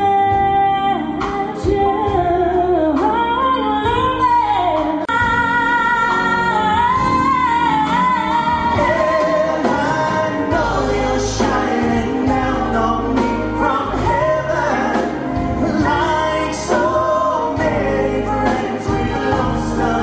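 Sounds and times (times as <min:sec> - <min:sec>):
backing band playing pop: 0:00.0 - 0:20.0
people singing into microphones: 0:00.0 - 0:20.0.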